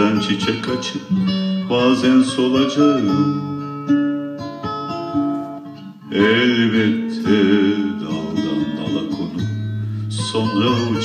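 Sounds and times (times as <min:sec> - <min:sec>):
acoustic guitar plucking: 0:00.0 - 0:11.0.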